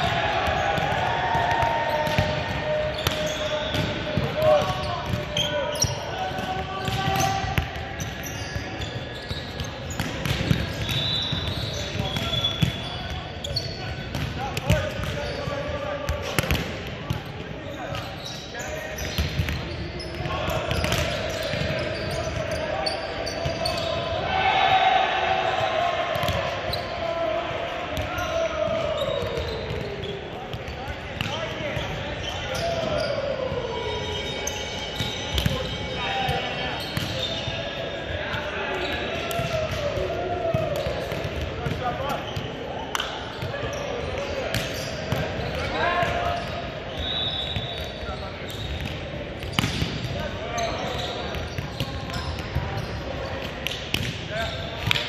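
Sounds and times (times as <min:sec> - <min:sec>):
chatter of players' voices: 0:00.0 - 0:55.0.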